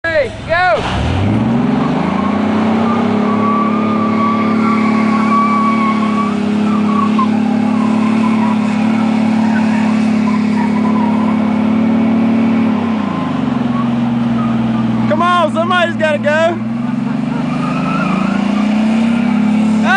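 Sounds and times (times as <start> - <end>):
truck engines revving: 0.0 - 19.9.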